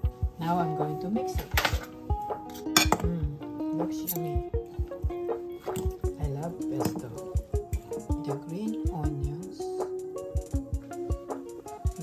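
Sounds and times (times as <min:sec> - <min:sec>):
background music with steady beat: 0:00.0 - 0:12.0
utensil clinking against ceramic bowl: 0:02.8 - 0:03.1.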